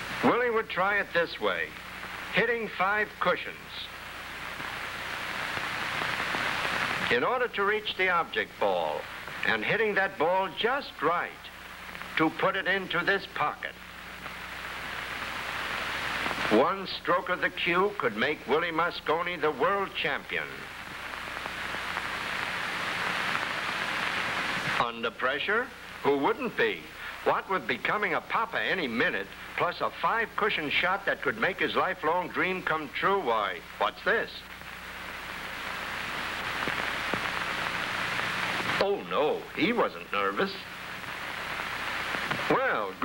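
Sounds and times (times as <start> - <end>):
steady hiss: 0.0 - 43.0.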